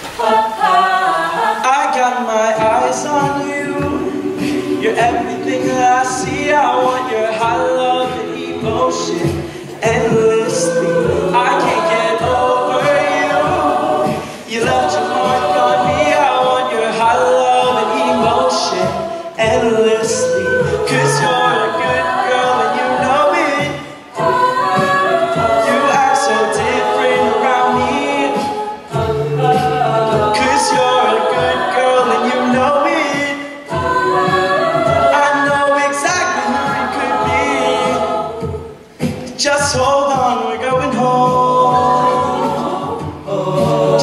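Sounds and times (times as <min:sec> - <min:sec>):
a cappella group singing: 0:00.0 - 0:44.0
vocal beat: 0:00.0 - 0:44.0.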